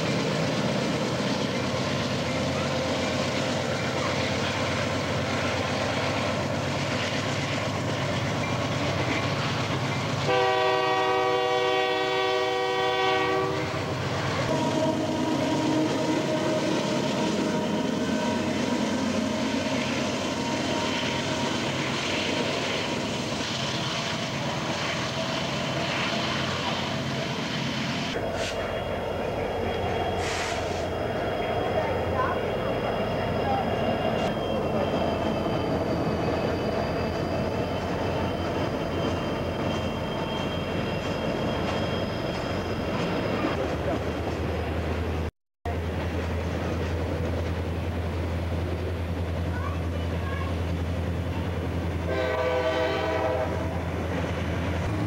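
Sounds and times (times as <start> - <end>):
diesel locomotive engine drone: 0.0 - 55.0
train wheels rumbling on rail: 0.0 - 55.0
locomotive air horn blast: 10.3 - 13.9, 14.5 - 16.6, 30.2 - 30.9, 52.0 - 53.8.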